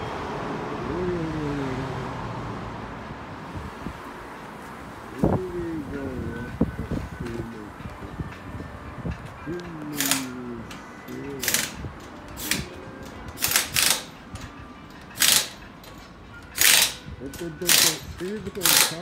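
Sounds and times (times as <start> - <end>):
pneumatic impact wrench rattling: 9.9 - 19.0.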